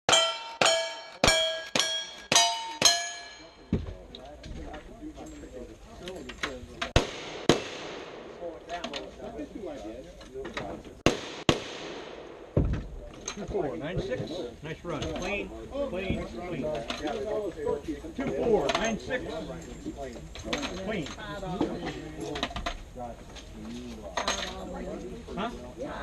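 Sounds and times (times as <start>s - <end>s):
steel target plate ringing: 0.1s - 3.7s
voices talking: 2.3s - 11.1s, 12.4s - 26.0s
gunshots: 6.9s - 8.6s, 11.0s - 12.7s.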